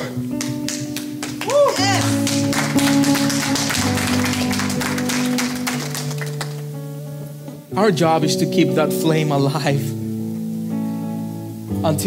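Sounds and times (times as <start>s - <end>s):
church band playing slow music: 0.0s - 12.0s
electric guitar: 0.0s - 12.0s.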